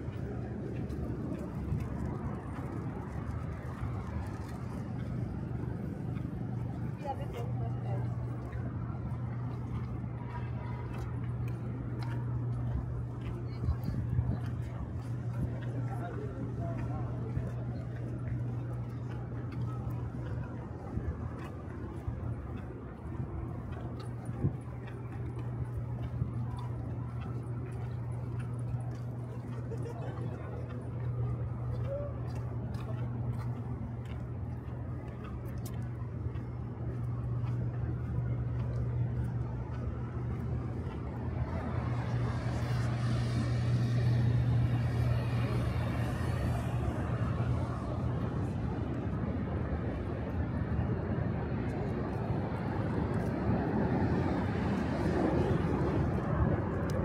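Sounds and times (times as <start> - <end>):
faint footsteps: 0.0 - 57.0
low city hum: 0.0 - 57.0
road traffic rush: 0.0 - 57.0.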